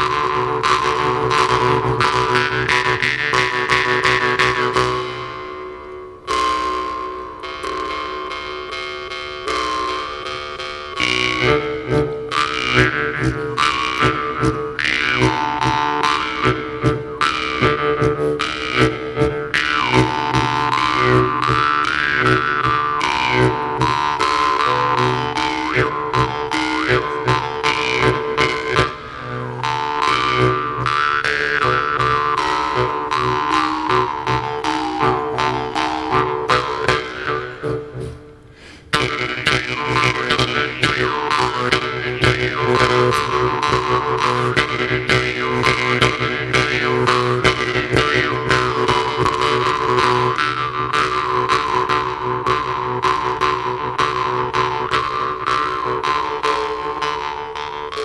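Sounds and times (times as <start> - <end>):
jew's harps twanging: 0.0 - 58.0.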